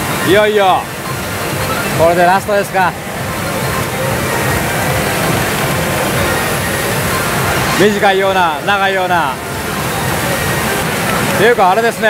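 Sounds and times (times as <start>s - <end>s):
continuous wash of noise: 0.0s - 12.0s
electronic machine music: 0.0s - 12.0s.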